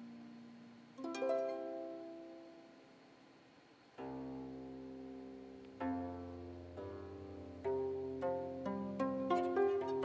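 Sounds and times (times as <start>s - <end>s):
plucked zither: 4.0s - 10.0s.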